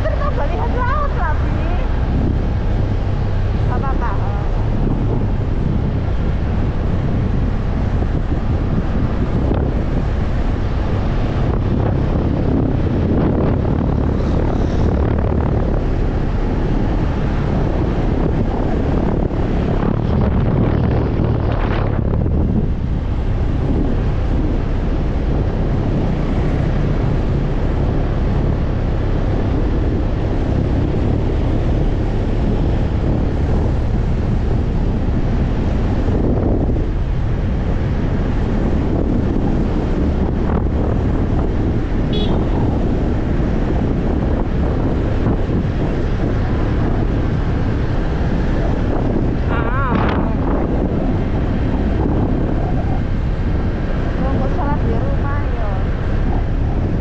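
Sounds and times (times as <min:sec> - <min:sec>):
motorcycle engine running: 0:00.0 - 0:57.0
wind noise on microphone: 0:00.0 - 0:57.0.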